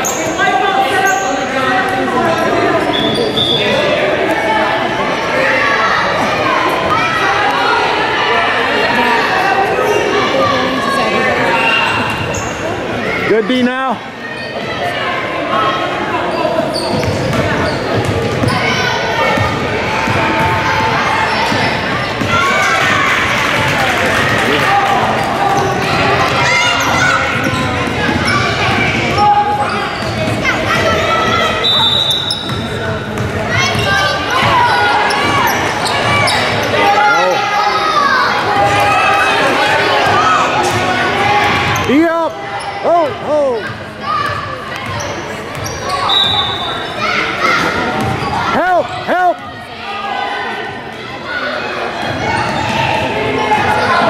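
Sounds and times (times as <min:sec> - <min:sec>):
shoe squeaks: 0:00.0 - 0:01.5, 0:02.8 - 0:03.8, 0:11.5 - 0:12.8, 0:16.3 - 0:18.8, 0:29.7 - 0:32.8, 0:33.7 - 0:37.0, 0:44.8 - 0:47.2
voices echoing in a hall: 0:00.0 - 0:54.0.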